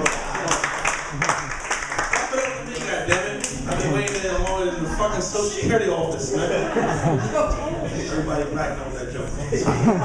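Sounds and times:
audience clapping: 0.0 - 4.7.

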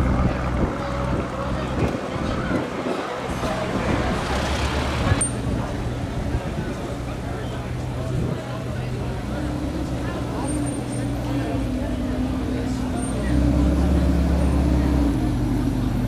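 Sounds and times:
street traffic: 0.0 - 16.0
voices: 0.0 - 16.0.

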